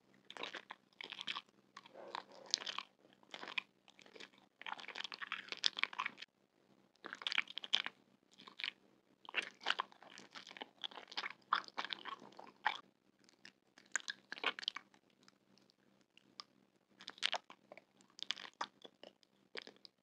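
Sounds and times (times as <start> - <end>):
crunchy food being chewed: 0.1 - 6.3, 7.0 - 20.0.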